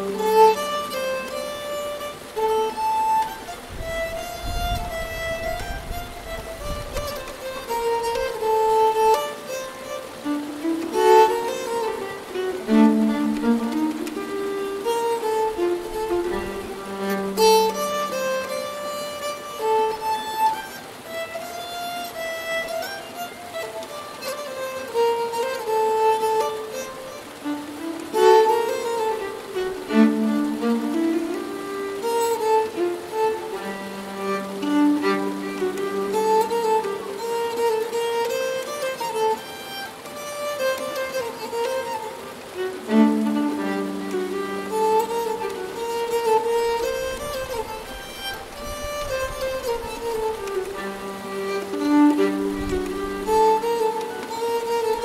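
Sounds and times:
bowed keyed fiddle melody: 0.0 - 55.0
stream burbling: 0.0 - 55.0.

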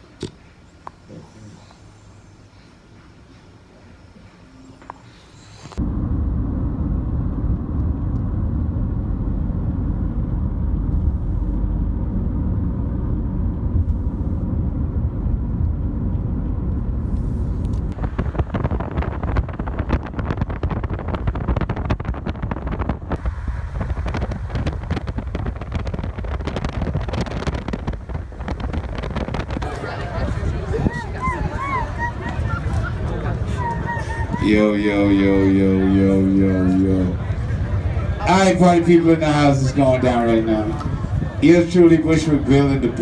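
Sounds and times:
car road rumble: 3.7 - 43.0
wind noise rushing hiss: 16.9 - 31.0.

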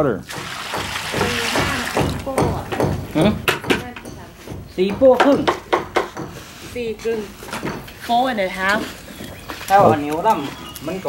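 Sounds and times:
metal hoe scraping wet render: 0.3 - 2.4.

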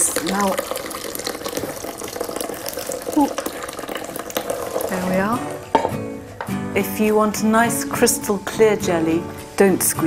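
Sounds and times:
liquid splashing into bowl: 0.0 - 6.0.

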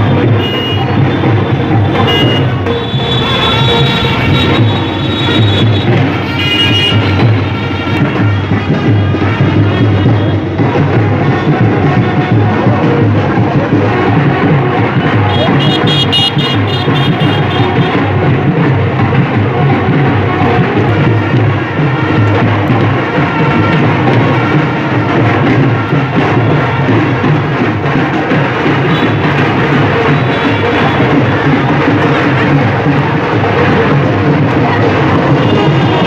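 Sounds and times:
band music with drums: 0.0 - 36.0.

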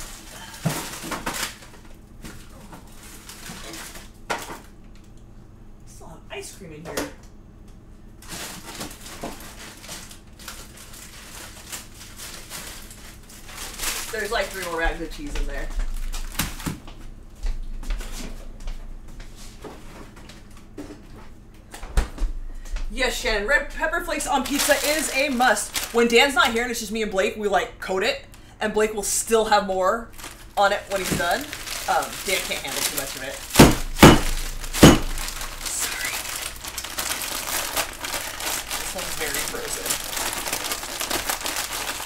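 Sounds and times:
plastic bag crinkling and crunching: 0.0 - 4.8, 8.2 - 16.8, 24.1 - 26.6, 30.0 - 42.0
loud thumps: 33.5 - 35.6
sharp knock: 33.6 - 35.2.

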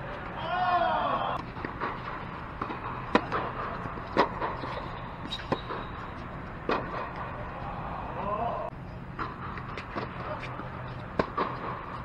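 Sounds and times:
steady background hum: 0.0 - 12.0
tennis rackets hitting balls: 1.3 - 8.4, 9.1 - 12.0.

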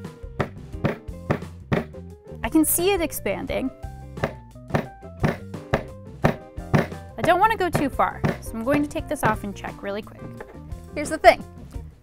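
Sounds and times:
rubber mallet tapping steel pin: 4.2 - 9.6.

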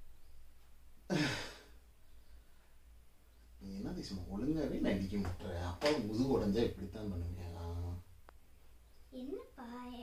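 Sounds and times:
man sighing: 1.1 - 1.8.

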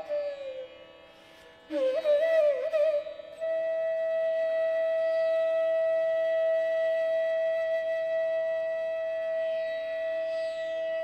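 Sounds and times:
bamboo flute holding a long note: 0.0 - 11.0.

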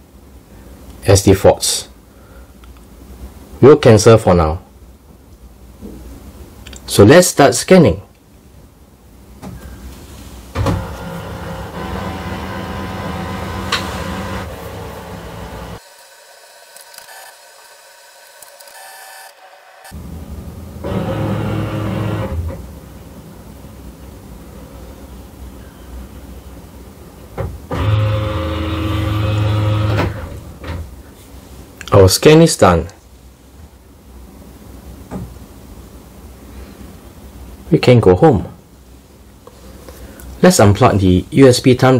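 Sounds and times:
printer document feeder motor running: 10.6 - 19.9, 20.8 - 22.6, 27.7 - 30.4.

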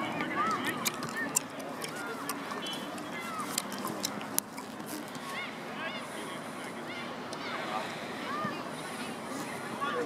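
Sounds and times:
steady outdoor hum: 0.0 - 10.0.

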